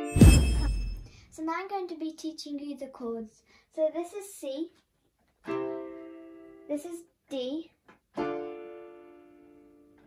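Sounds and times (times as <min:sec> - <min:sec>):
electronic keyboard chord: 0:08.2 - 0:09.8.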